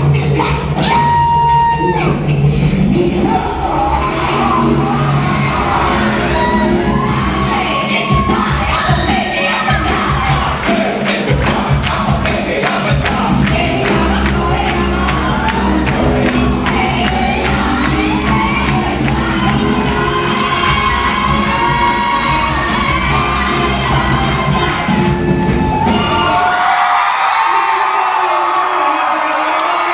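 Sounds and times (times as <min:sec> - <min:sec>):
crowd cheering and whooping: 0:00.8 - 0:02.2, 0:03.4 - 0:10.4, 0:13.6 - 0:29.9
club music with heavy bass: 0:02.0 - 0:09.2, 0:09.8 - 0:26.6.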